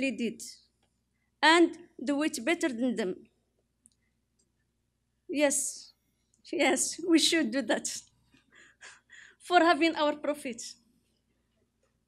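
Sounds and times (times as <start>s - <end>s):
woman speaking: 0.0s - 0.7s, 1.4s - 3.3s, 5.3s - 5.9s, 6.5s - 8.1s, 9.4s - 10.8s.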